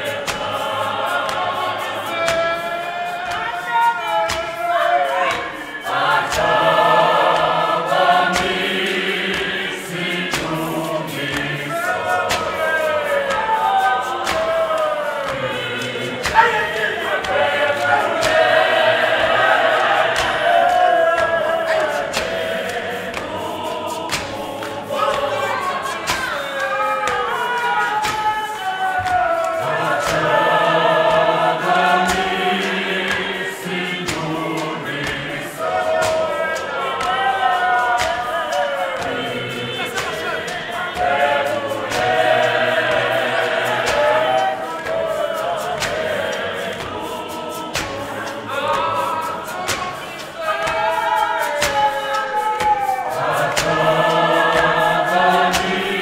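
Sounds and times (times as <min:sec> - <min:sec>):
choir singing in harmony: 0:00.0 - 0:56.0
sharp beats: 0:00.0 - 0:56.0.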